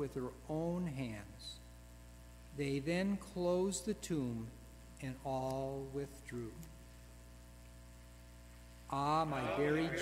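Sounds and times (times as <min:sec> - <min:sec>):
man speaking: 0:00.0 - 0:01.6, 0:02.5 - 0:06.7, 0:08.9 - 0:10.0
faint mains hum: 0:00.0 - 0:10.0.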